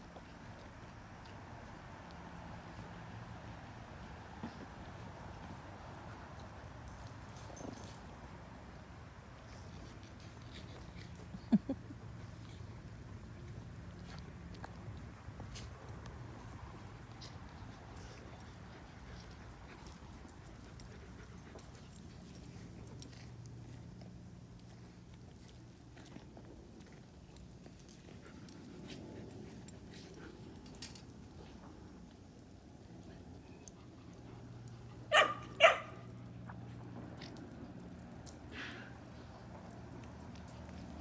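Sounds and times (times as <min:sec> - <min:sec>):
dog barking: 0:35.1 - 0:36.1.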